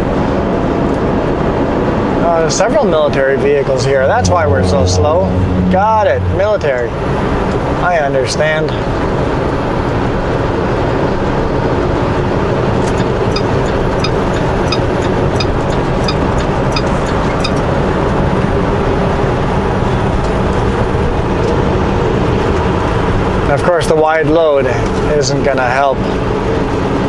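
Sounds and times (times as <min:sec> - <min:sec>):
road noise: 0:00.0 - 0:27.0
truck engine drone: 0:00.0 - 0:27.0.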